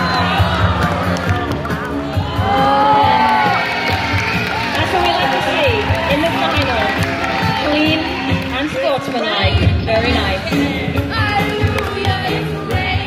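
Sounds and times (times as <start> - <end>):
crowd cheering and calling out: 0.0 - 13.0
music with a steady beat: 0.0 - 13.0.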